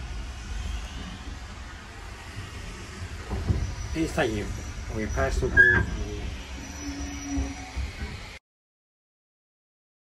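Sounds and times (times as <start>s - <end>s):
low rumble in railway carriage: 0.0s - 8.4s.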